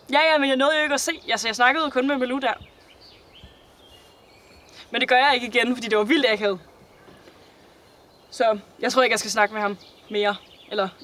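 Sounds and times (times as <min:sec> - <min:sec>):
distant bird calls: 0:00.0 - 0:11.0
person speaking: 0:04.8 - 0:06.6.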